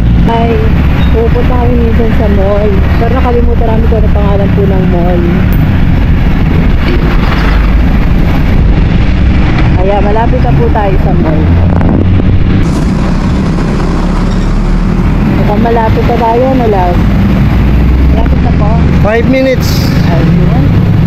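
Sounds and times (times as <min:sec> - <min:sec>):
wind on microphone: 0:00.0 - 0:19.1
motorcycle engine rumble: 0:00.0 - 0:21.0.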